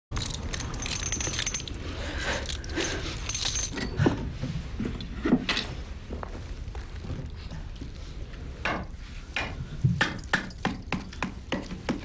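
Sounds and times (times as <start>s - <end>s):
light metallic jingling and clinking: 0.1s - 4.1s.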